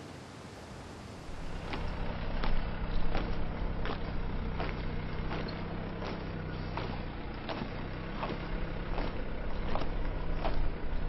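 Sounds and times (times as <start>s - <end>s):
outdoor hiss: 0.0s - 3.6s
vehicle engine hum: 0.0s - 11.0s
soft marching knocks: 1.3s - 11.0s.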